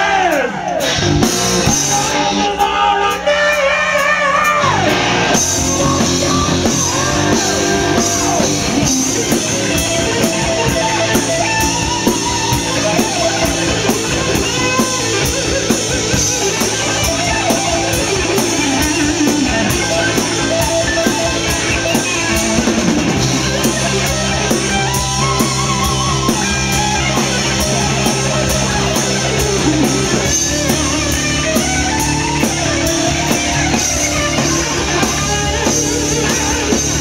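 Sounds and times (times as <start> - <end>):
electric guitar lead lines: 0.6 - 37.0
drum kit cymbal beat: 3.9 - 37.0.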